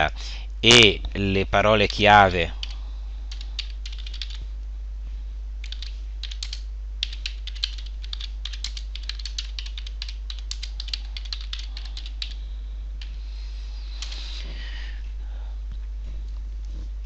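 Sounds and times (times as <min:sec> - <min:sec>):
steady low hum: 0:00.0 - 0:17.0
keyboard typing: 0:01.8 - 0:04.4, 0:05.6 - 0:12.4.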